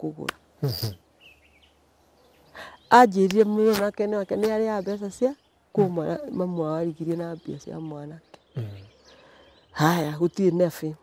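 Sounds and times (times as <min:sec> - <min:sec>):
faint high bird chirps: 0:00.6 - 0:11.0
person talking: 0:02.9 - 0:08.9.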